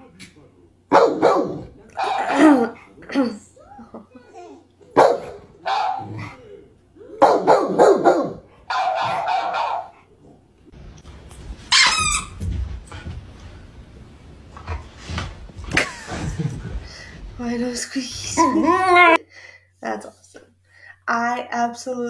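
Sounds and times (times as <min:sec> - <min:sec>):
dog barking: 0:00.9 - 0:02.5, 0:05.0 - 0:06.2, 0:07.2 - 0:10.0.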